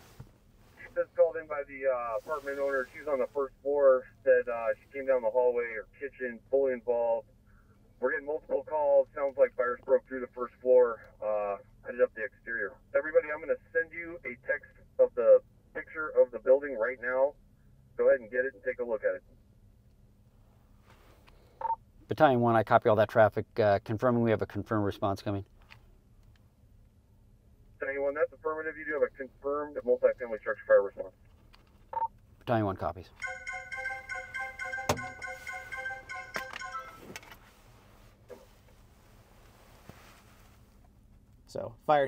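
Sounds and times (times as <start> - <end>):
low background noise: 0.0 - 42.0.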